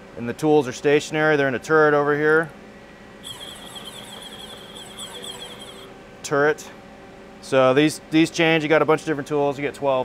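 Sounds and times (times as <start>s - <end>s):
lathe turret drive whine: 3.2s - 6.0s.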